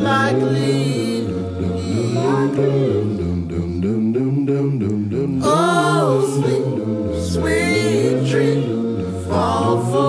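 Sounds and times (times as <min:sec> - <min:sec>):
a cappella harmony singing: 0:00.0 - 0:10.0
low sustained backing voices: 0:00.0 - 0:10.0.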